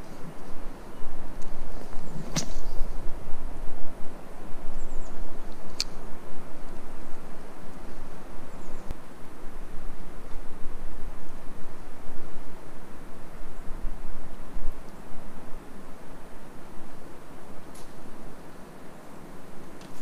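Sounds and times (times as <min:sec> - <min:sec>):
sharp snap: 0:02.3 - 0:02.6.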